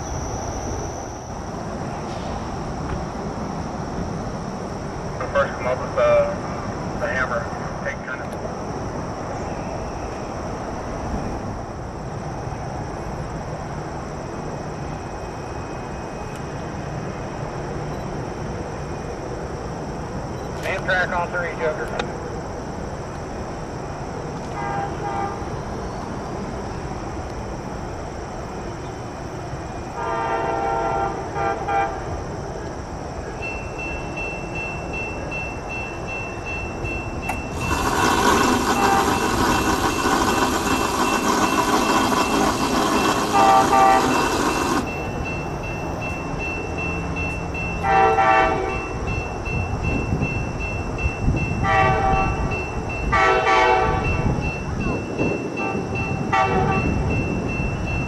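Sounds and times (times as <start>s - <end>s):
train rushing noise: 0.0s - 58.0s
train horn blasts: 24.5s - 25.5s, 30.0s - 32.1s, 37.5s - 44.9s, 47.8s - 49.0s, 51.6s - 52.5s, 53.1s - 54.3s, 55.6s - 57.0s.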